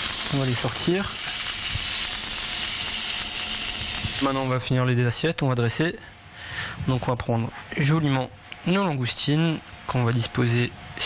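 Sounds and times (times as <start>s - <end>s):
langoustines sizzling in a frying pan: 0.0s - 4.7s.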